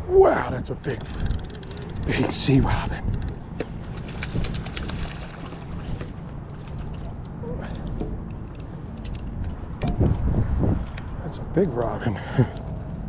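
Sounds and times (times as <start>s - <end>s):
wind rumble on microphone: 0.0s - 13.0s.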